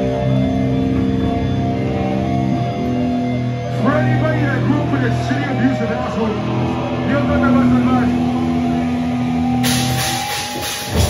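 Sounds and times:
punk band guitar and bass: 0.0 - 11.0
cymbal hiss: 9.6 - 11.0.

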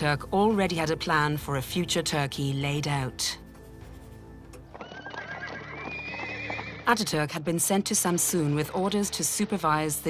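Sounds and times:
background music: 0.0 - 10.0
horse neighing: 4.8 - 6.9.

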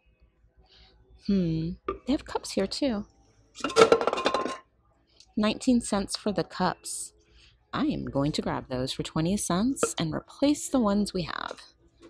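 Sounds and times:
cups clattering and clinking: 3.6 - 4.7.

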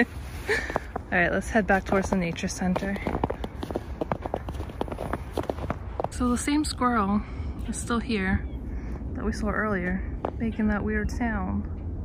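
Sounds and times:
footsteps crunching on snow: 0.0 - 6.8.

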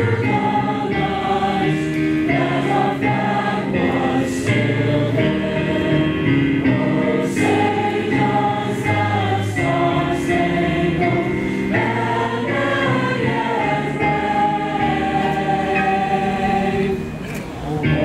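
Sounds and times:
choir singing long held notes: 0.0 - 18.0.

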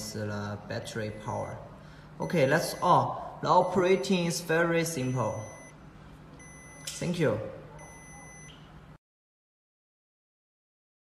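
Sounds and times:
high electronic beep: 2.2 - 5.8, 6.4 - 7.0, 7.8 - 8.7.

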